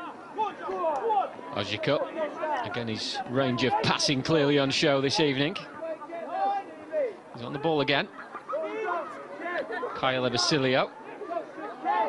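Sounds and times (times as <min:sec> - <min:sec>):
background chatter: 0:00.0 - 0:12.0
men talking and calling out: 0:00.0 - 0:12.0.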